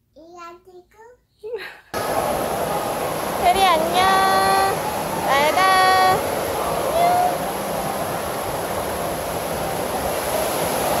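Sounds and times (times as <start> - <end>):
water rippling and lapping: 2.0 - 11.0.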